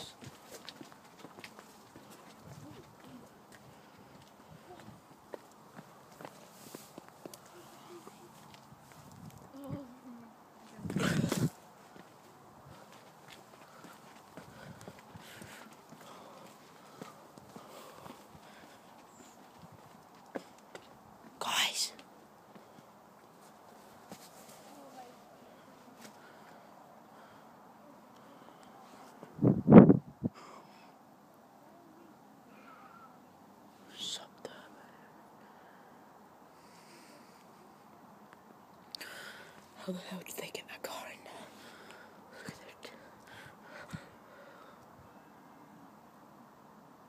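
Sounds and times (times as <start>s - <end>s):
footsteps of people walking: 0.0s - 9.9s, 10.6s - 21.4s, 22.0s - 25.1s
faint hushed voices: 0.0s - 29.4s, 30.3s - 46.8s
faint background noise: 0.0s - 47.0s
breathy whisper: 21.4s - 22.0s, 31.6s - 37.7s, 39.0s - 45.6s.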